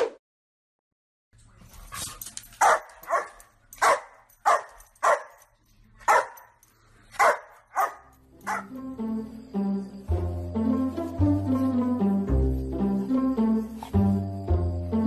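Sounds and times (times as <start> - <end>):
dog barking: 2.6 - 6.6, 7.2 - 8.8
plucked-string music: 8.3 - 15.0.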